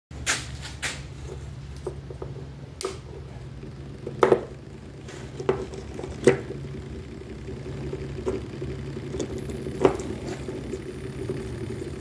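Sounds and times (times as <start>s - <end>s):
electric motors humming: 0.7s - 12.0s.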